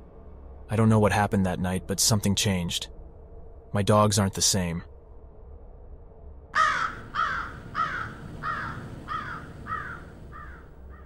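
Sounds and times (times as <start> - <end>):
bird cawing: 6.6 - 11.0.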